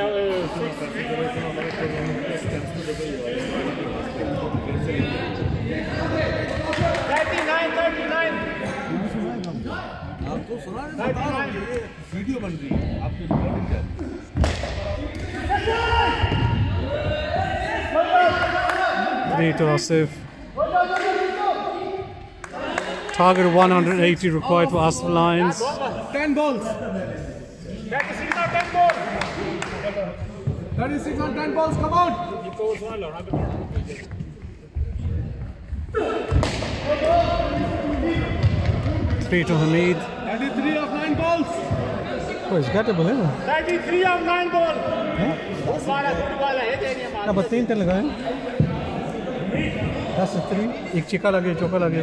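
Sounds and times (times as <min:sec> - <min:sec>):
men talking and calling out: 0:00.0 - 0:52.0.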